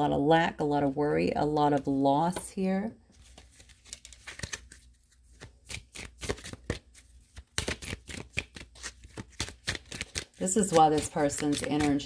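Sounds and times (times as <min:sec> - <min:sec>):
cards being shuffled: 0:03.1 - 0:12.0.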